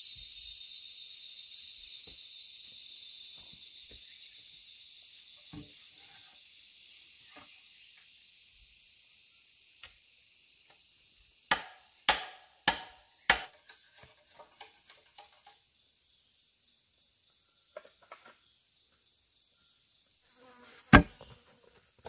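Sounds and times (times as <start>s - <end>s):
high drone of insects: 0.0s - 22.0s
sharp strikes on bamboo: 11.5s - 13.8s, 20.9s - 21.2s.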